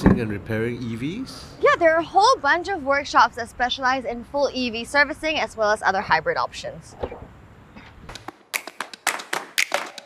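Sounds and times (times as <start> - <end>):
sharp clap-like hits: 8.1 - 10.0.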